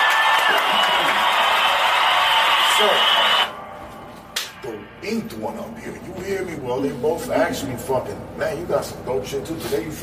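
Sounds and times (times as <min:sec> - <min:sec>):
crowd cheering: 0:00.0 - 0:03.6.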